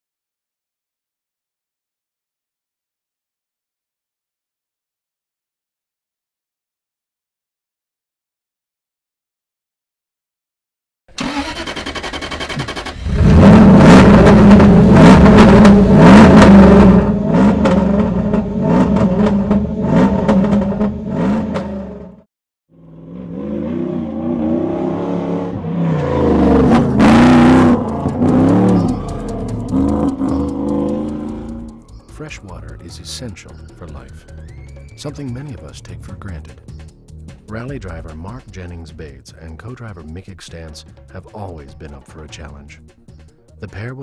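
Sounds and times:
rally car engine revving: 11.2s - 22.2s, 22.8s - 33.6s.

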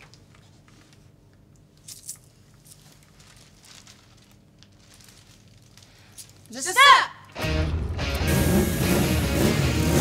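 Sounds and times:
food packaging crinkling: 2.2s - 6.6s.

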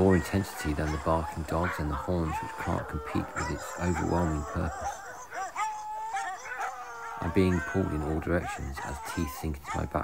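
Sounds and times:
hounds baying and howling: 0.0s - 10.0s.

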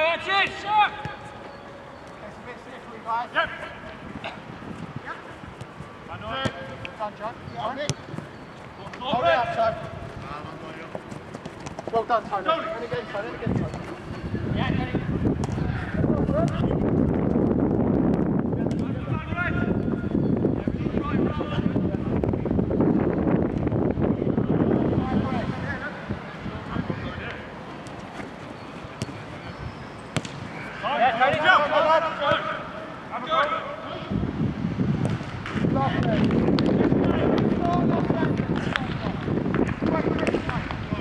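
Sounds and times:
players shouting: 0.0s - 1.4s, 30.5s - 34.1s
football kicked: 30.1s - 30.4s.

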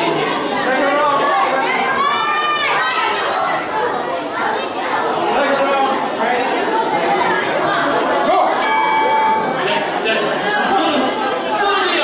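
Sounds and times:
babble of many voices: 0.0s - 12.0s.

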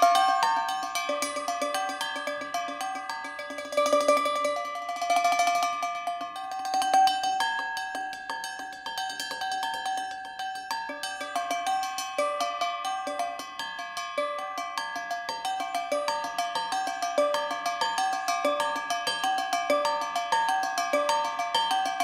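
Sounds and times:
percussion on recycled objects: 0.0s - 22.0s.

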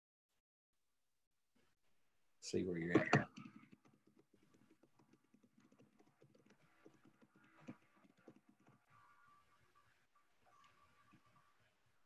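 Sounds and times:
keyboard typing: 2.9s - 9.4s.

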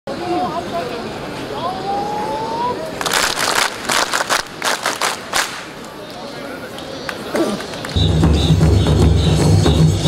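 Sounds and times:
crowd chatter: 0.1s - 10.0s
group clapping in unison: 3.0s - 8.2s.

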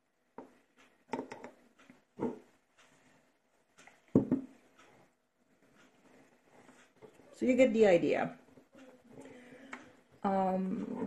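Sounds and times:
knocks on wooden table: 4.2s - 4.4s.

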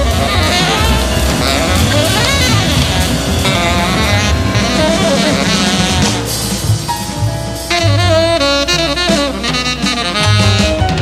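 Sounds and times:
saxophone lines bending in pitch: 0.0s - 10.9s
drum kit: 0.0s - 11.0s
piano: 0.0s - 11.0s
upright bass: 0.0s - 11.0s.

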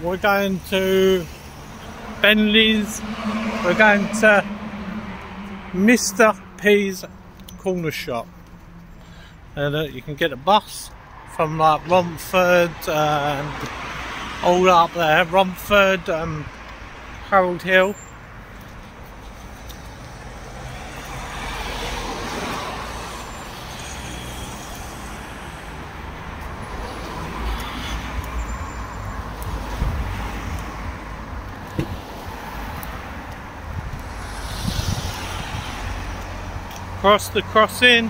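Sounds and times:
cars driving past: 0.0s - 10.3s, 10.9s - 38.0s
low traffic rumble: 0.0s - 38.0s.

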